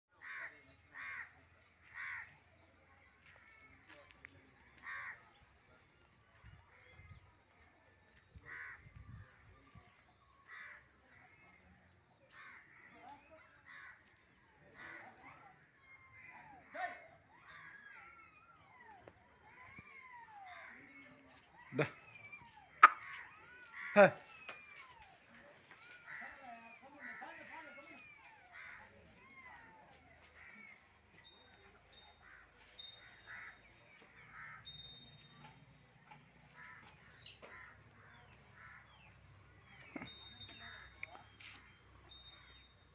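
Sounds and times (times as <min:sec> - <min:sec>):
birds calling: 0:15.8 - 0:42.9
short harsh bird calls: 0:22.6 - 0:24.9.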